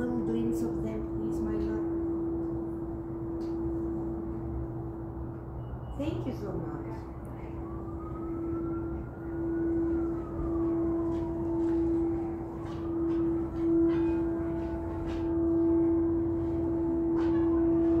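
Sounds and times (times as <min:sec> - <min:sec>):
singing bowl low tone: 0:00.0 - 0:06.1, 0:07.6 - 0:18.0
steady higher bowl tones: 0:00.0 - 0:18.0
higher sliding bowl tones: 0:09.4 - 0:18.0.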